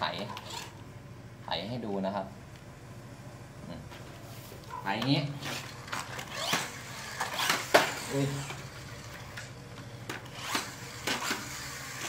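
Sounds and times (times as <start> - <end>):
plastic wheels clicking and scraping: 0.1 - 0.8, 5.0 - 12.0
toy truck flywheel whirring: 0.1 - 0.8, 5.4 - 12.0.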